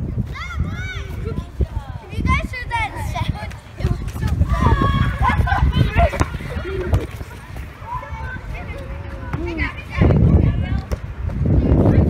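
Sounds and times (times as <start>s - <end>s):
children shouting: 4.1s - 7.0s.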